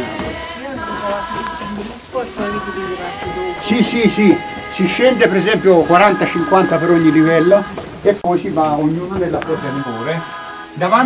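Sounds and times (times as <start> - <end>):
background music: 0.0 - 11.0
people talking: 0.0 - 11.0.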